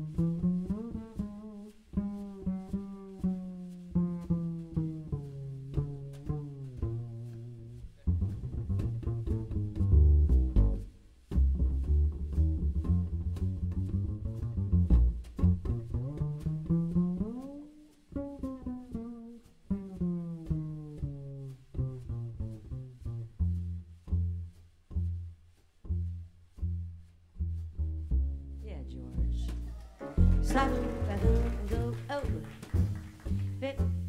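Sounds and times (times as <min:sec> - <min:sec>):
double bass plucked: 0:00.0 - 0:34.0.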